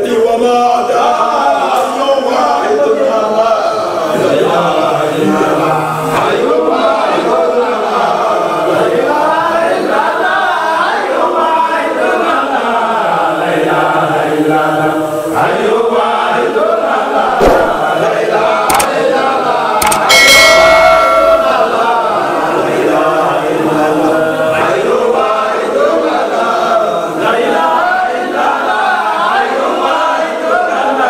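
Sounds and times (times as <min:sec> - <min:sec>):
men chanting together: 0:00.0 - 0:31.0
brief high-pitched sound: 0:17.4 - 0:18.0.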